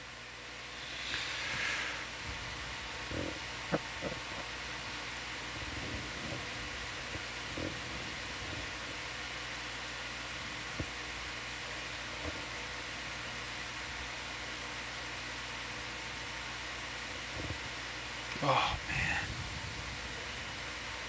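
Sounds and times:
background hiss: 0.0 - 12.4
low even hum: 0.0 - 21.0.

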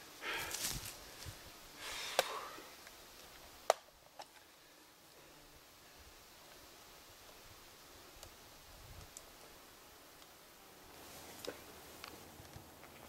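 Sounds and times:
people rustling in brush: 0.0 - 5.4, 6.2 - 13.0.

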